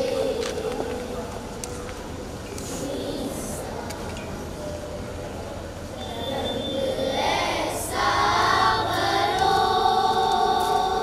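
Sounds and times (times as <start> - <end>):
children singing in chorus: 0.0 - 1.1, 6.0 - 11.0.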